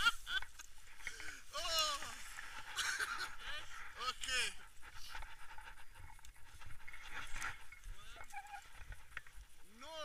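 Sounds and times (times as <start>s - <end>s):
faint rustling: 0.0s - 9.9s.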